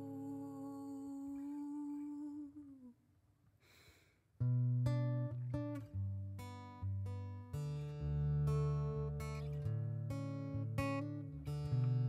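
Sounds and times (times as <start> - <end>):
woman humming: 0.0 - 3.0.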